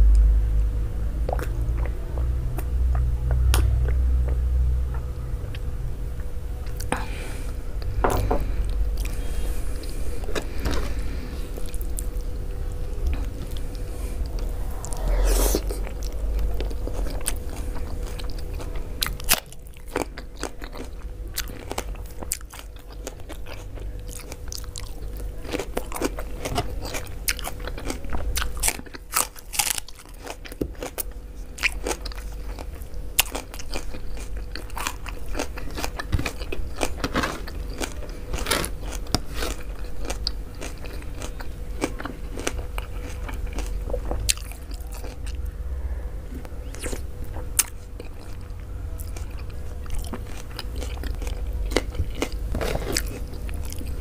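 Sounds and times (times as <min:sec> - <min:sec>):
faint steady hum: 0:00.0 - 0:54.0
person chewing food: 0:07.8 - 0:12.2, 0:13.0 - 0:45.5, 0:46.6 - 0:54.0.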